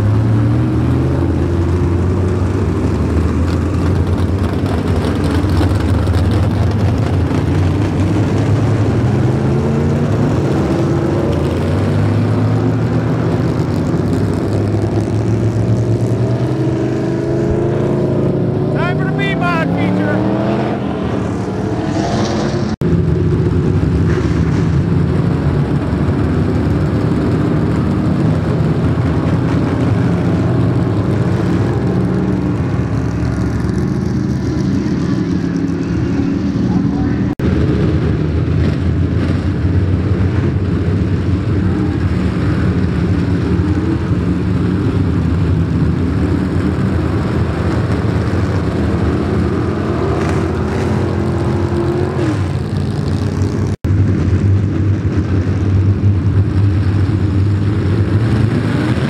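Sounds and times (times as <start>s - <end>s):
race car engines revving: 0.0s - 59.0s
sharp rising engine whine: 15.6s - 22.8s.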